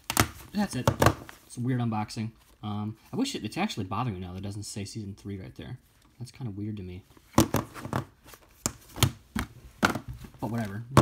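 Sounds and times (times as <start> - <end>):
plastic cases clacking on table: 0.0 - 1.4, 7.4 - 11.0.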